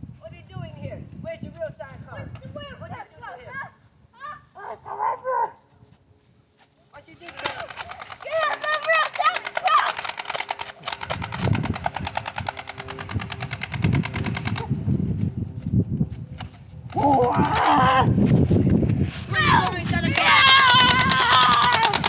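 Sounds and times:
toy gun machine-gun rattle: 7.0 - 14.7, 19.6 - 22.0
voices shouting: 7.4 - 10.3, 19.3 - 22.0.

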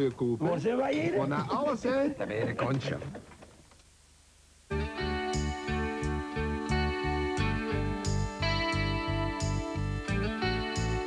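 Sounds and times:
instrumental music with held chords: 4.7 - 11.0.

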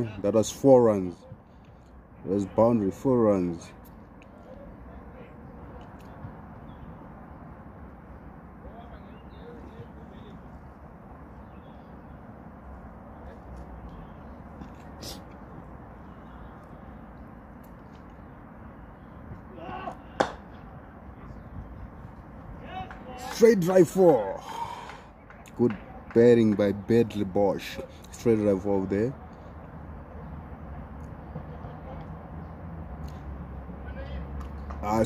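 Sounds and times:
outdoor ambience: 0.0 - 35.0
person shouting: 19.5 - 20.1
bat striking ball: 20.2 - 20.5.

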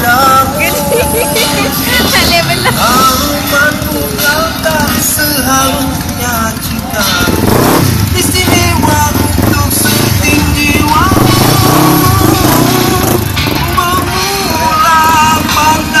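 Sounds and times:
amplified music with singer: 0.0 - 16.0
motorcycle engines revving: 0.0 - 16.0.

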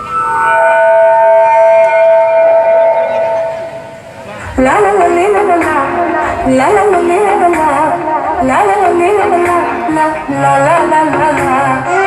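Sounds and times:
steady held chord tones: 0.0 - 12.0.

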